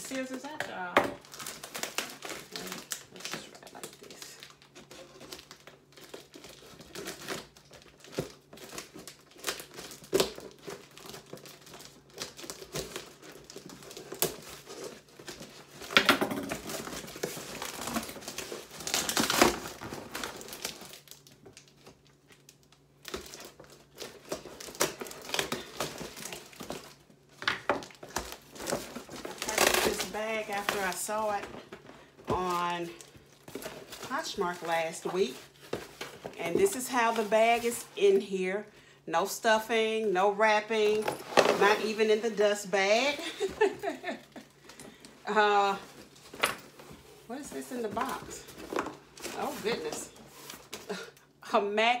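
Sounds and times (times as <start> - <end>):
packing tape ripping: 1.2 - 27.0, 27.8 - 31.4.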